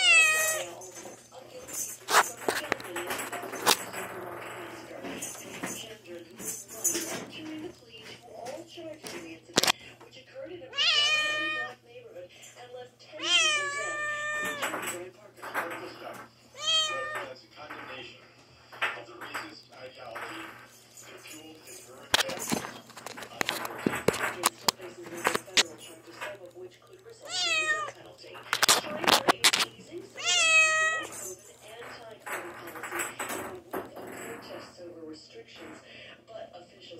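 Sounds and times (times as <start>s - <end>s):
kitten meowing: 0.0s - 0.6s, 10.8s - 11.7s, 13.2s - 14.7s, 16.6s - 17.2s, 27.3s - 27.9s, 30.2s - 31.1s.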